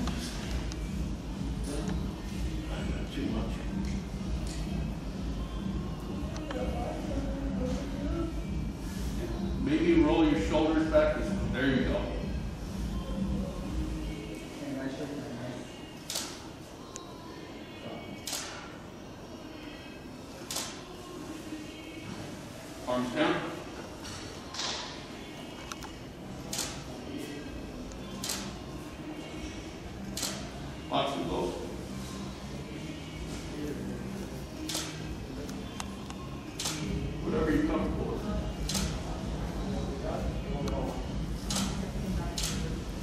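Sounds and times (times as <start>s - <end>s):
faint room chatter: 0.0s - 43.0s.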